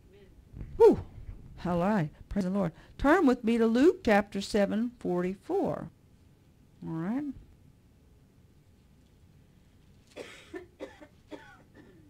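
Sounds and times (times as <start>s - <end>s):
woman coughing: 10.1s - 12.0s.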